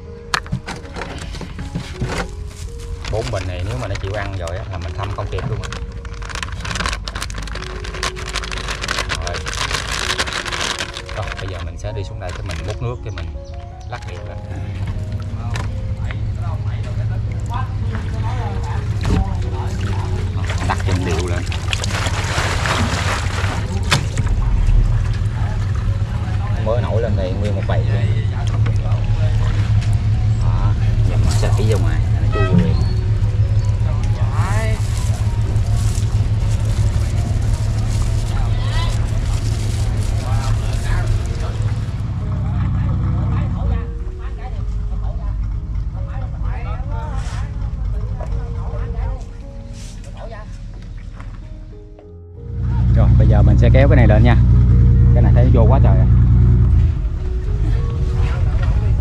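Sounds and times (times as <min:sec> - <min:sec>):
boat engine drone: 0:00.0 - 0:51.7, 0:52.3 - 0:59.0
water splashing: 0:17.2 - 0:26.5, 0:31.0 - 0:43.2.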